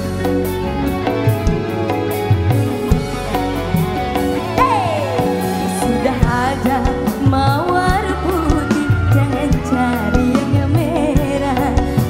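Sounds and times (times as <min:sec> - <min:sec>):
woman singing: 0:04.6 - 0:12.0.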